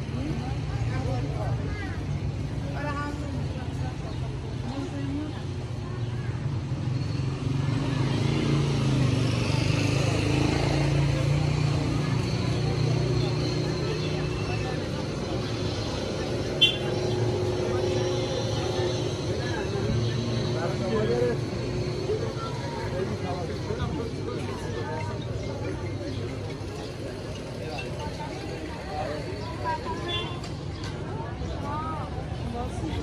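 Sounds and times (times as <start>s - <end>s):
low rumble of traffic: 0.0s - 33.0s
passers-by talking: 0.0s - 33.0s.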